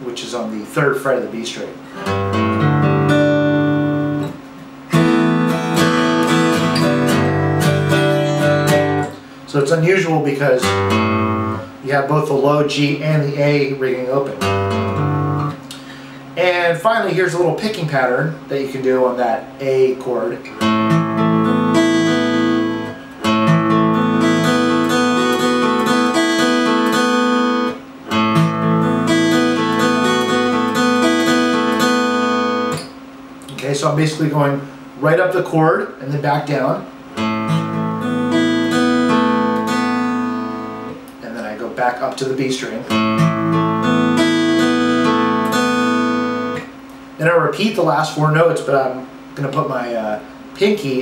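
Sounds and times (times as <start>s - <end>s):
guitar strings damped: 0.2s - 12.6s
acoustic guitar arpeggio: 1.8s - 11.8s, 12.8s - 16.2s, 20.2s - 33.0s, 37.1s - 46.8s.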